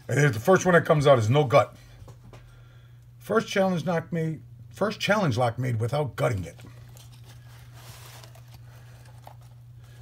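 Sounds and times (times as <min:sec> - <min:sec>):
steady low hum: 0:00.0 - 0:10.0
cardboard box rustling: 0:06.8 - 0:10.0.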